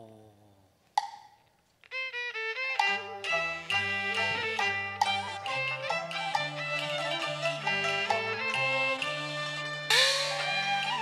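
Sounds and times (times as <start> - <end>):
string accompaniment: 1.8 - 11.0
sharp percussion knock: 9.9 - 10.8.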